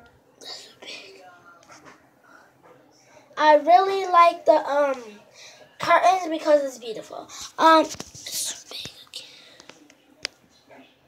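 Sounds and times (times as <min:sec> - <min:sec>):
girl whispering: 0:00.4 - 0:01.3, 0:07.2 - 0:09.6.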